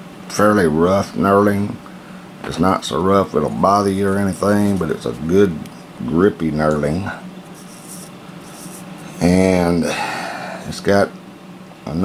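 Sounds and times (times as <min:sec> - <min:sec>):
hands rubbing metal flashlight: 0:07.5 - 0:09.2.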